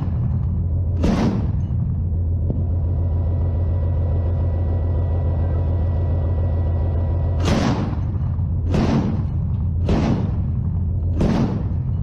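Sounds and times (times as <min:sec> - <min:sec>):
diesel engine rumbling: 0:00.0 - 0:12.0
autocannon shot: 0:01.0 - 0:02.0, 0:07.3 - 0:12.0.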